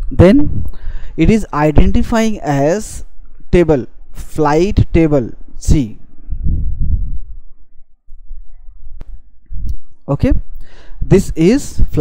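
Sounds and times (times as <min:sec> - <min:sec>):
man speaking: 0:00.0 - 0:00.6, 0:01.2 - 0:06.0, 0:10.1 - 0:10.4, 0:11.1 - 0:12.0.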